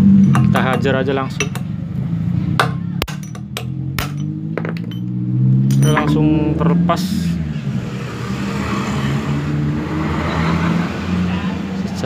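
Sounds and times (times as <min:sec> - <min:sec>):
hammer striking steel shaft: 0:00.0 - 0:01.7, 0:02.6 - 0:05.1, 0:05.7 - 0:06.4.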